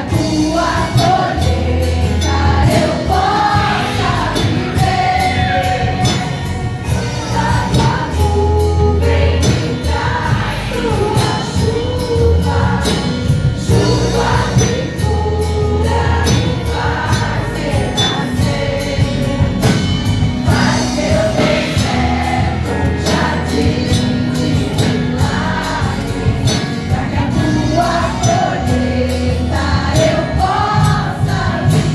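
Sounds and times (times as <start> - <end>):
women singing gospel song: 0.0 - 31.9.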